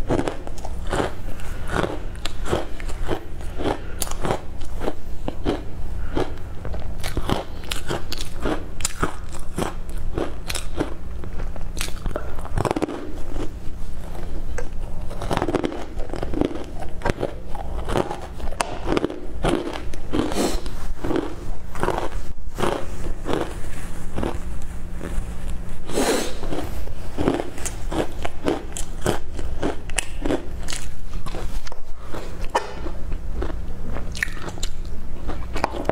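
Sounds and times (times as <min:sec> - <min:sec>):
crunchy chewing: 0:00.0 - 0:35.9.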